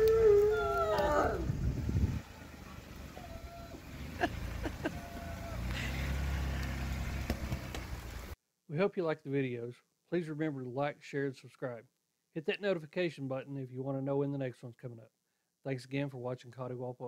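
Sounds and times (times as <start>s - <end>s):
dog howling: 0.0s - 1.5s, 2.6s - 3.8s, 4.8s - 5.7s
low rumble: 0.3s - 6.6s.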